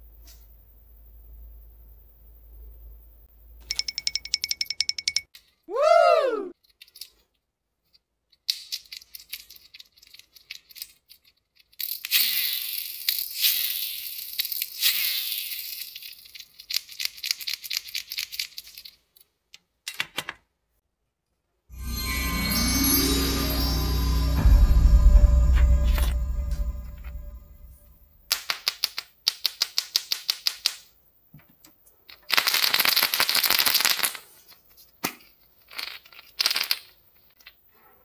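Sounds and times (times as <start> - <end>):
toy car wheels clicking and whirring: 8.3 - 19.3.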